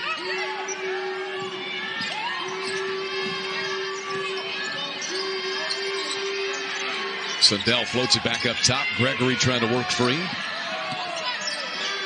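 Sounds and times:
arena crowd noise: 0.0 - 12.0.

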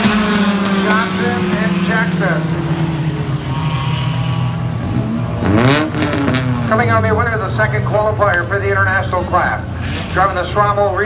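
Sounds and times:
race car engine passing: 0.0 - 11.0.

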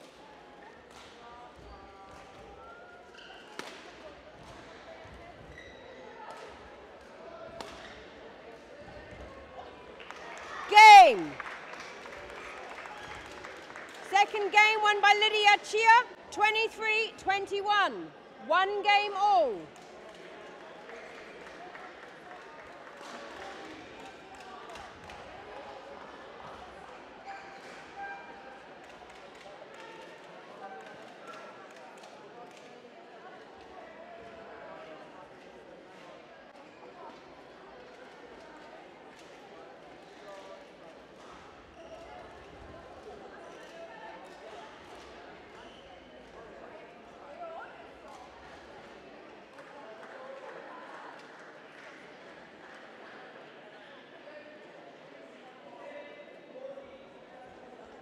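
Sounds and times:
murmur of voices: 0.0 - 58.0.

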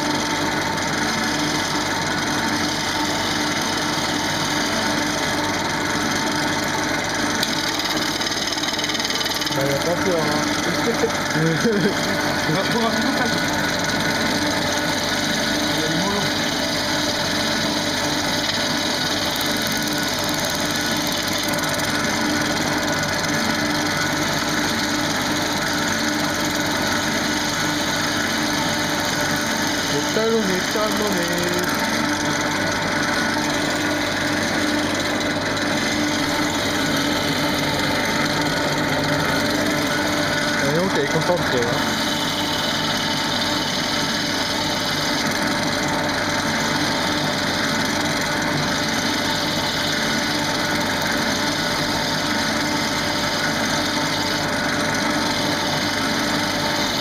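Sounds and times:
gouge shaving wood: 0.0 - 57.0
wood lathe hum: 0.0 - 57.0.

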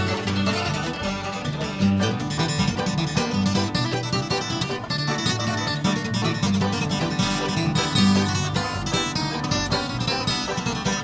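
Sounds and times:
bluegrass string band playing: 0.0 - 11.0.

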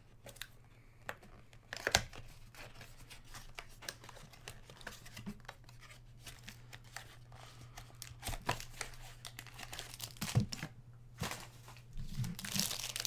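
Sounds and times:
foil pack crinkling: 7.6 - 13.0.

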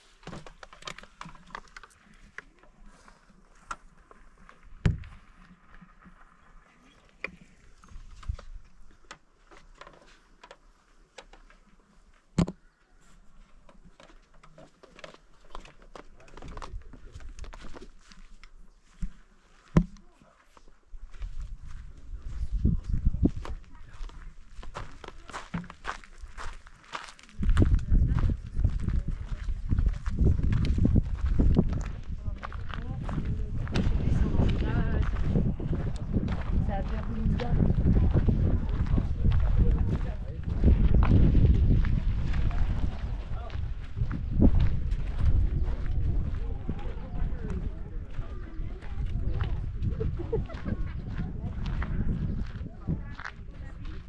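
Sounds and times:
footsteps on gravel path: 0.0 - 54.0
wind buffeting microphone: 21.1 - 24.9, 27.4 - 54.0.

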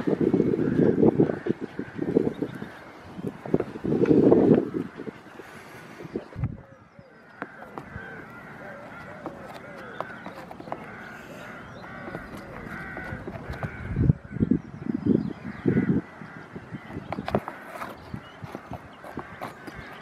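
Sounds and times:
birds calling: 0.0 - 20.0
hooves clicking and scraping on board: 7.3 - 13.8, 16.9 - 20.0.

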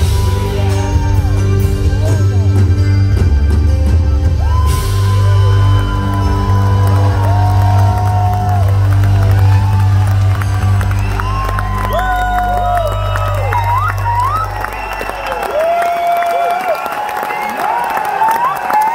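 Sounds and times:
audience cheering and whooping: 0.0 - 2.0, 4.1 - 18.9
audience applauding: 4.4 - 18.9.

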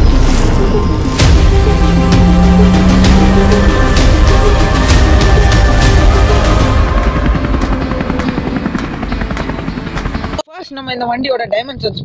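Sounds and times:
helicopter rotor chopping: 0.0 - 10.5
background music: 0.0 - 11.3.

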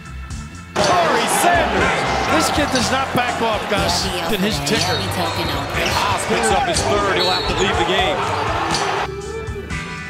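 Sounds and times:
commentator speaking: 0.8 - 8.3
arena crowd noise: 0.8 - 9.3.

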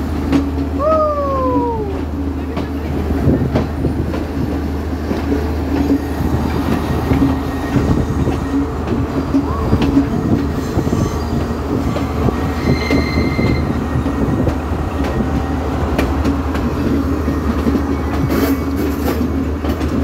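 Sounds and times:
train wheel clacks: 0.0 - 20.0
train wheels rumbling: 0.0 - 20.0
high wheel squeal: 10.6 - 13.9.

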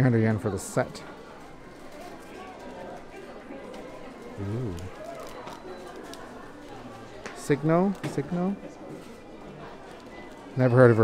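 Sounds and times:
low hubbub: 0.0 - 11.0.

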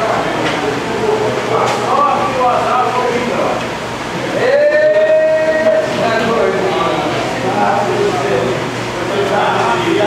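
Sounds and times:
voices in room: 0.0 - 10.0.

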